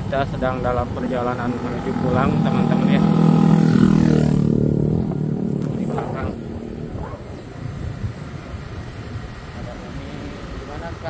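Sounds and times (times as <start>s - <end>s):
motorcycle engine drone: 0.0s - 11.0s
road noise: 0.0s - 11.0s
wind buffeting microphone: 0.0s - 11.0s.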